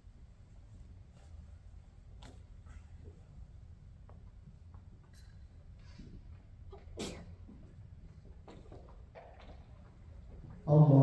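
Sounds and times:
low hum of hall: 0.0s - 11.0s
person sneezing: 7.0s - 7.3s.

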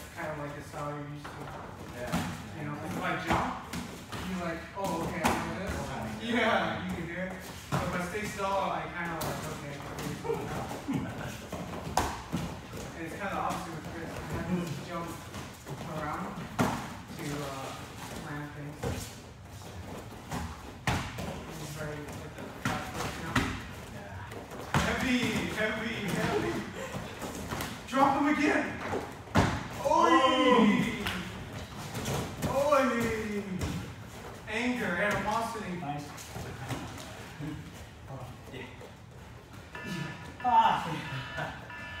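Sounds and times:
voices talking: 39.7s - 42.0s.

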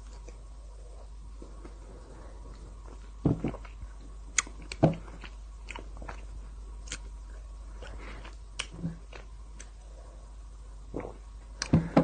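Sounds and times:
person chewing: 0.0s - 9.8s.

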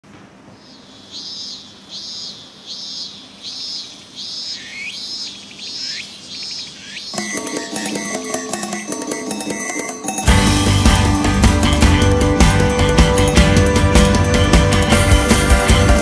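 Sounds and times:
cicada singing: 0.5s - 10.2s
electric guitar rock music: 10.3s - 16.0s.

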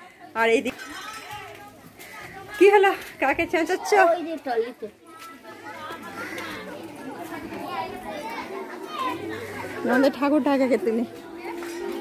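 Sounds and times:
crowd of women and children chattering: 0.0s - 12.0s.

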